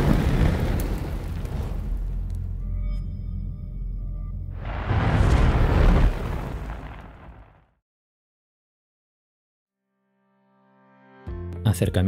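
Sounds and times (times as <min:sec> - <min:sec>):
fire explosion rumble with hiss: 0:00.0 - 0:02.4, 0:04.6 - 0:07.7.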